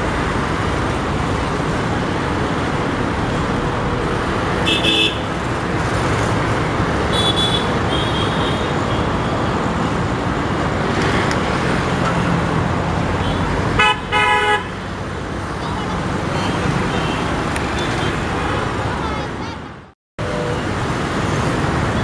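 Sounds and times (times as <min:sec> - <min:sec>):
road traffic hum: 0:00.0 - 0:22.0
vehicle horns tooting: 0:04.6 - 0:05.3, 0:07.1 - 0:09.1, 0:13.2 - 0:14.8.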